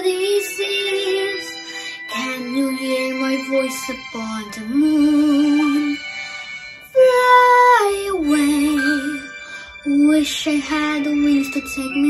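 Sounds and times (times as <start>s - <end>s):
soft backing track: 0.0s - 12.0s.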